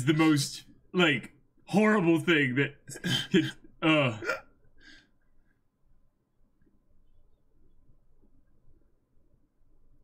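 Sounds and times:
man laughing: 2.9 - 4.4
faint breath: 4.8 - 5.6.

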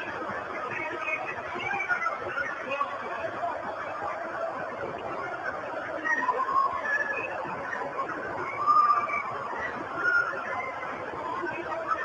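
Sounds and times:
steady tape hiss: 0.0 - 12.0
wailing screaming voices: 0.7 - 12.0.

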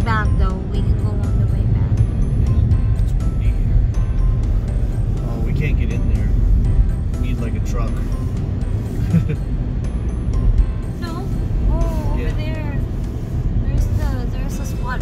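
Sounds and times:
car tyre and engine rumble: 0.0 - 15.0.

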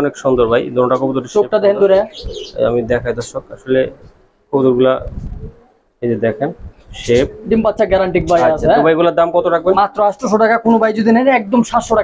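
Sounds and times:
pigeons cooing: 1.9 - 4.1, 5.1 - 5.8
high bird chirps: 2.0 - 2.7.

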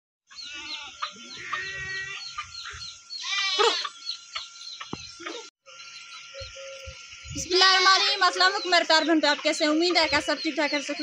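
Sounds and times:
small birds chirping: 0.3 - 11.0
goat bleating: 0.4 - 2.3, 3.2 - 3.9.

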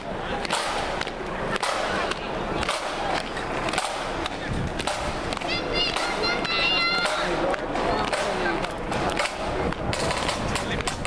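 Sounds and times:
parade street noise: 0.0 - 11.0
sharp clicks and knocks: 0.4 - 6.2, 7.0 - 11.0.

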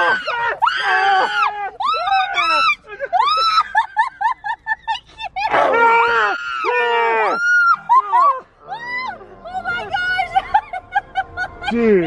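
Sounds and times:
people screaming: 0.0 - 4.0, 5.4 - 10.8
people laughing: 1.3 - 5.9, 7.4 - 12.0.

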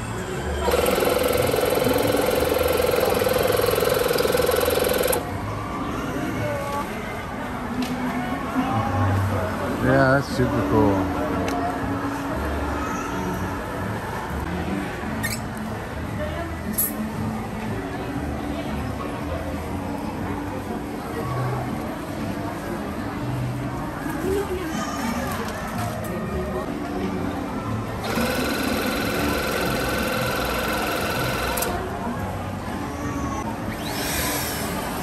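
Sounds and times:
murmur of indoor shop: 0.0 - 35.0
balloon inflator motor hum: 0.7 - 5.2, 28.0 - 31.8.

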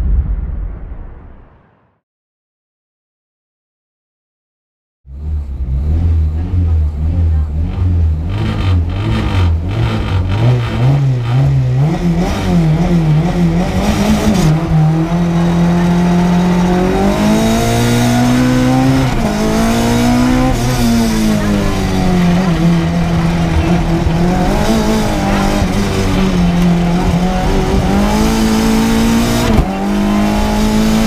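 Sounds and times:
car engine revving: 5.1 - 31.0
gear change: 12.8 - 31.0.

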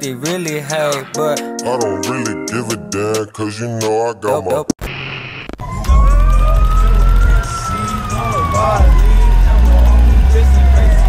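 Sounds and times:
siren wailing: 5.2 - 11.0
voices: 6.0 - 11.0.

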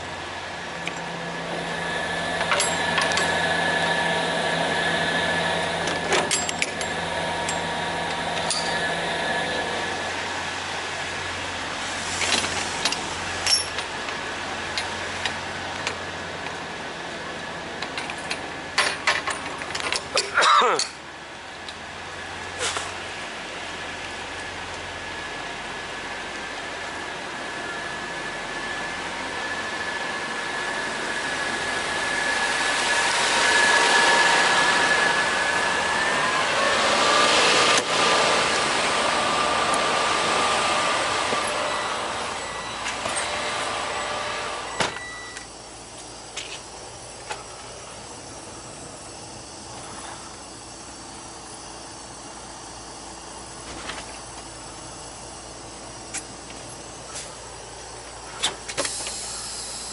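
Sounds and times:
diesel truck engine idling: 0.0 - 11.8.

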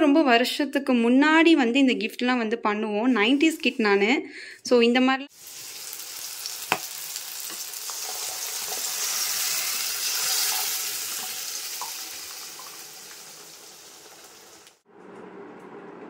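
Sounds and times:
dal sizzling in a hot pan: 5.3 - 14.8.

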